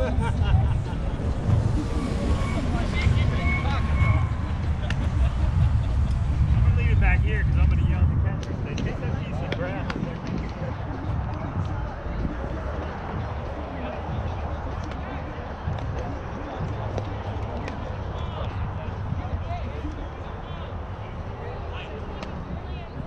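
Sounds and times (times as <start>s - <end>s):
low rumble: 0.0s - 21.8s
people talking and calling: 0.0s - 23.0s.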